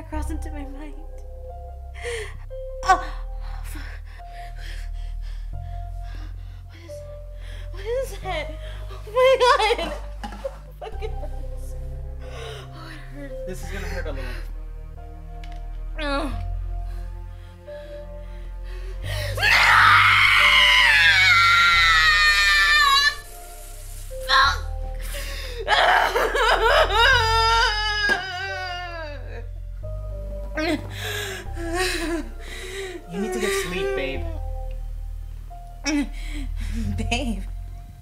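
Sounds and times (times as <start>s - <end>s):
music: 0.0s - 38.0s
woman screaming in pain: 19.4s - 23.2s, 25.7s - 26.3s, 27.0s - 29.4s.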